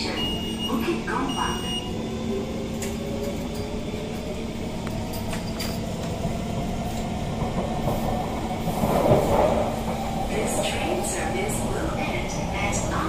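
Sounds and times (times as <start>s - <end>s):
rail rumble: 0.0s - 13.0s.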